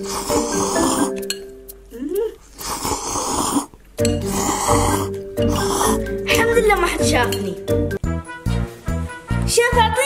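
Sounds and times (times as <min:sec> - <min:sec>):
slurping noodles: 0:00.0 - 0:01.2, 0:02.4 - 0:06.1
background music: 0:00.0 - 0:02.3, 0:04.0 - 0:10.0.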